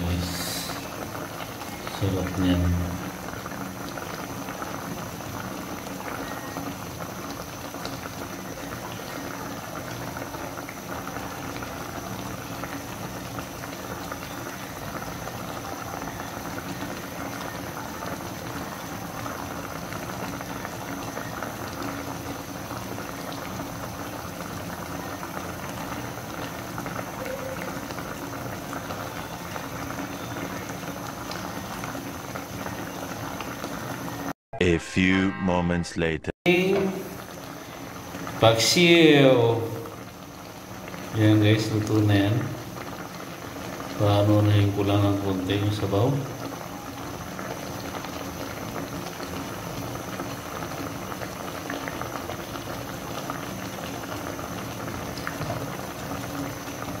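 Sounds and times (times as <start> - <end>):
broth bubbling in a pan: 0.0 - 34.4, 36.5 - 57.0.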